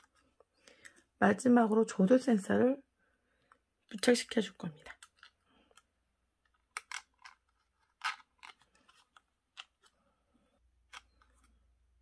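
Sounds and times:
handling clicks and crackles: 4.8 - 10.0.

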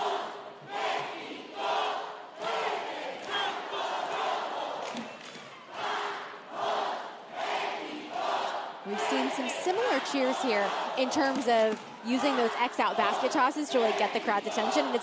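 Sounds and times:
cheerleaders shouting in unison: 5.7 - 15.0.

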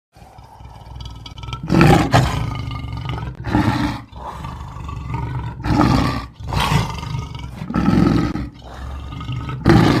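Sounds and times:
big cat roaring and growling: 0.1 - 10.0.

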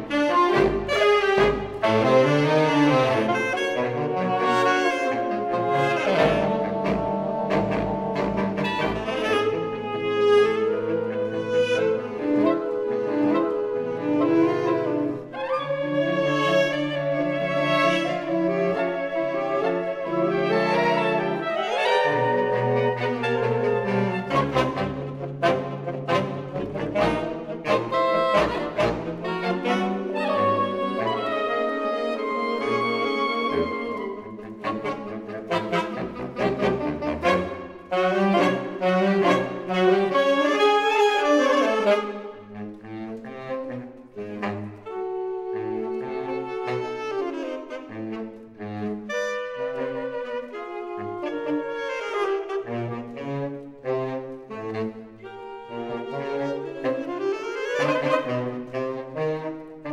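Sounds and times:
saxophone ensemble chords: 0.0 - 59.9.

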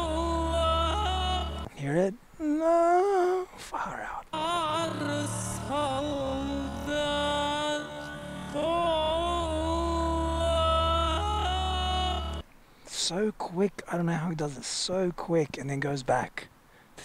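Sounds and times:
low steady bass accompaniment: 0.0 - 1.7, 4.4 - 12.4
man singing with vibrato: 0.0 - 1.7, 2.4 - 3.6, 4.3 - 12.4.

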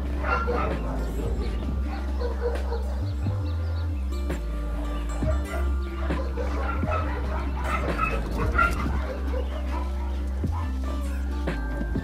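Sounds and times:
background music: 0.0 - 12.0
dog giving high-pitched cries: 0.2 - 3.4, 4.8 - 11.2.

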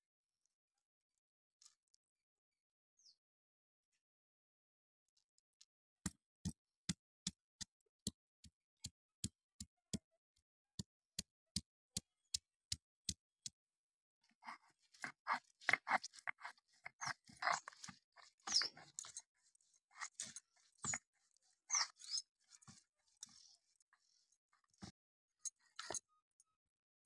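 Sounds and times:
spices crunching on grinding stone: 15.0 - 19.2.

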